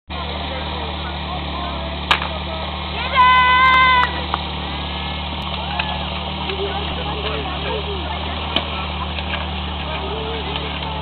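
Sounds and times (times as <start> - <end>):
faint voices: 0.1 - 11.0
pump engine idling: 0.1 - 11.0.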